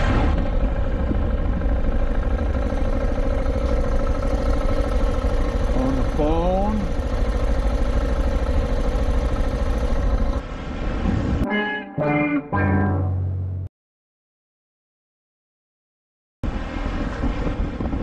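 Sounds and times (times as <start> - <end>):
motorcycle engine idling: 0.4 - 10.4
rising pitched sound: 11.3 - 13.7.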